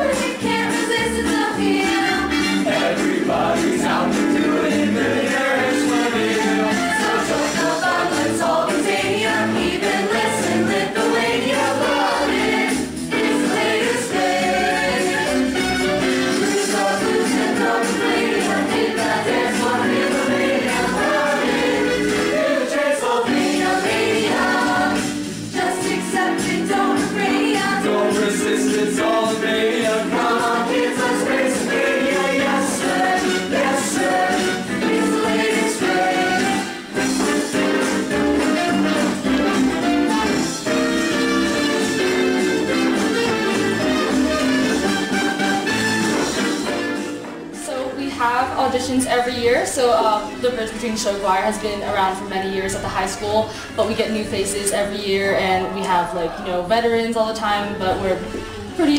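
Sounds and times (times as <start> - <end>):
choir singing with accompaniment: 0.0 - 47.6.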